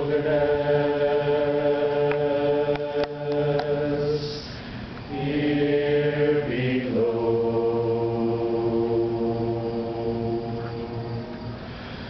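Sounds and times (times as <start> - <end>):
men singing a hymn: 0.0 - 4.5, 5.1 - 11.3.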